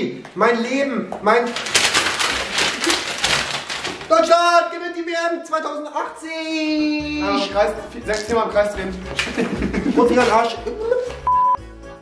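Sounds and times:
paper being crumpled: 1.4 - 4.3, 9.0 - 10.5.

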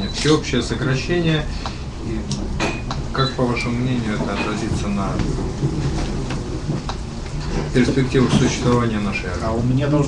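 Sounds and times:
crowded room rumble: 0.0 - 10.0.

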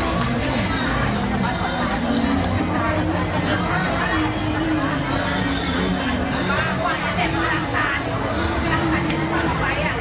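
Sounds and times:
people talking at once: 0.0 - 10.0.

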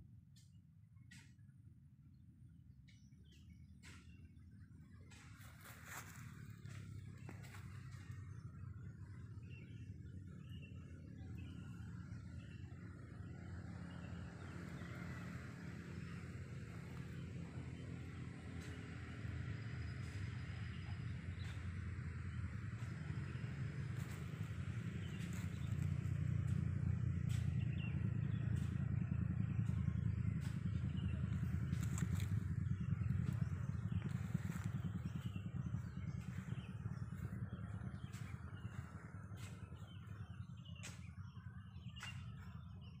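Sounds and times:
motor engine low rumble: 0.0 - 43.0.

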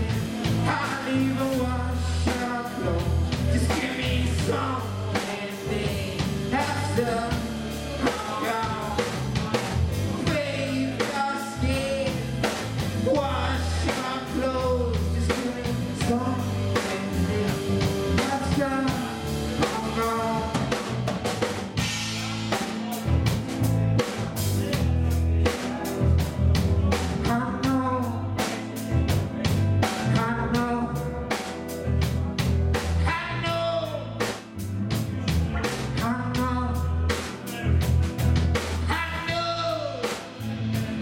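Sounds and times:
man singing into a microphone: 0.0 - 21.0, 24.6 - 31.4, 32.0 - 38.0, 38.6 - 41.0
drum kit and cymbals: 0.0 - 41.0
electric bass: 0.0 - 41.0
electric guitar: 0.0 - 41.0.

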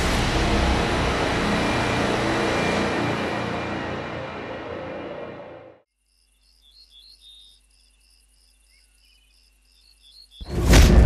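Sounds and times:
music sting: 0.0 - 5.8
insect chirping: 5.9 - 10.5.

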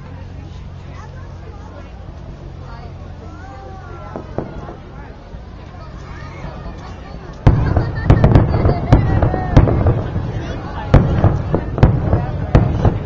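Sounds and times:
fireworks bursting: 4.1 - 5.9, 6.9 - 13.0.

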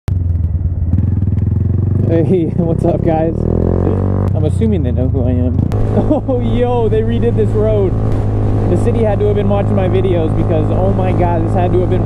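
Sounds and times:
motorcycle engine running: 0.1 - 12.0.

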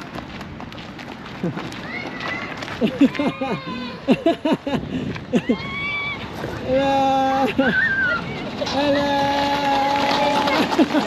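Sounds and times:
running footsteps on gravel: 0.0 - 3.7, 7.6 - 11.0.

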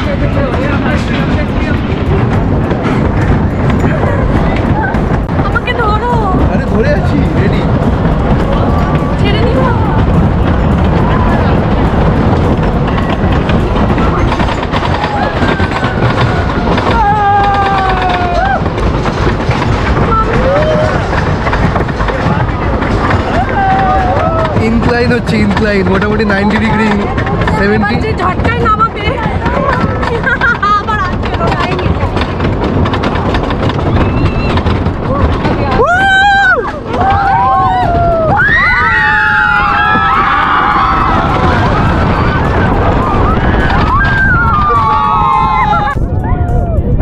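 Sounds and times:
rapid clicking from track: 0.0 - 47.0
roller coaster chain lift rumbling: 0.0 - 47.0.

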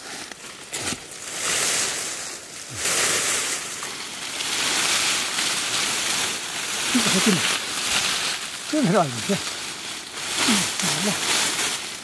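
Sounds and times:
leafy branches rustling: 0.0 - 12.0.

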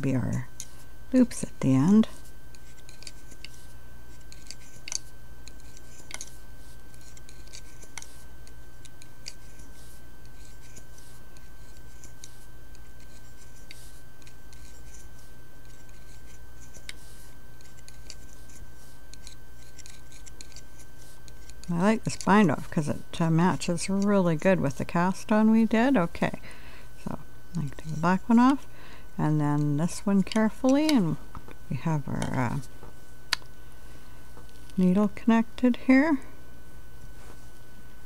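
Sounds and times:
faint high whine: 0.0 - 38.0
steady low hum: 0.0 - 38.0.

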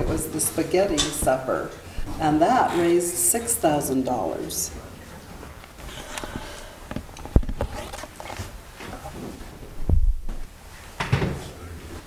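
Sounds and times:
people moving about: 0.0 - 12.0
dull low thump: 9.8 - 10.4.

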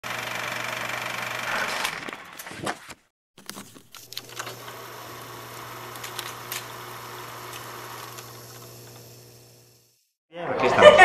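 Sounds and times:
film projector clattering: 0.0 - 10.0.

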